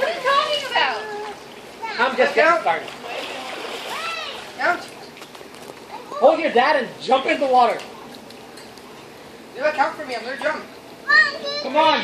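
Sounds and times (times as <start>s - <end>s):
pool water splashing: 0.0s - 12.0s
child calling: 3.9s - 4.4s, 11.0s - 12.0s.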